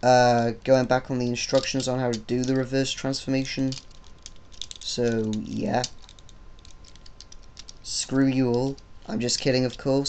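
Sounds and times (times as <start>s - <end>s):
plastic toy parts clicking: 1.4s - 9.9s.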